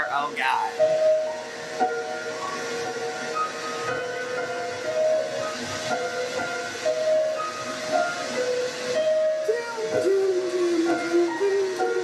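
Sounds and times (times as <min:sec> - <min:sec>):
slow piano: 0:00.0 - 0:12.0
steady hiss: 0:00.0 - 0:12.0.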